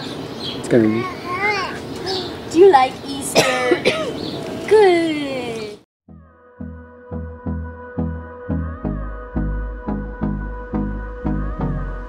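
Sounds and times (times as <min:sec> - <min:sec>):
toddler vocalizing: 0:00.9 - 0:02.4.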